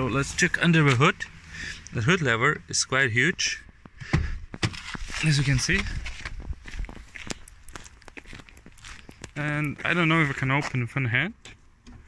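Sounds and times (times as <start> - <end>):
footsteps on dry grass and sand: 4.4 - 10.9.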